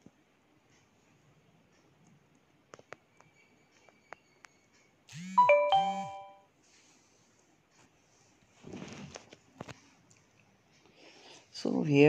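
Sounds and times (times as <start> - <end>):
two-note ding-dong chime: 5.4 - 6.4.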